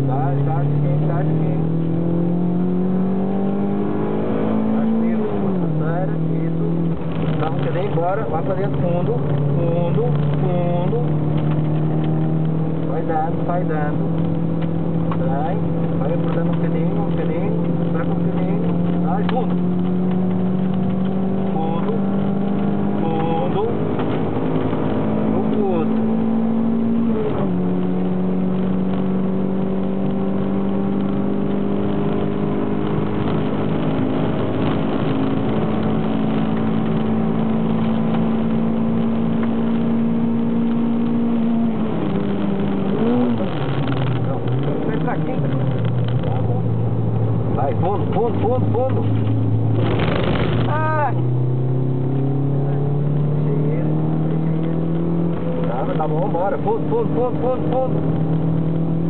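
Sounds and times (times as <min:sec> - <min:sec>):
car engine at full throttle: 0:00.0 - 0:59.0.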